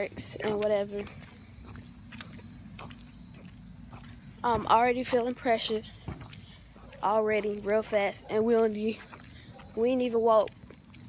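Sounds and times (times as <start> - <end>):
insect chorus: 0.0 - 11.0
soft footsteps: 0.0 - 11.0.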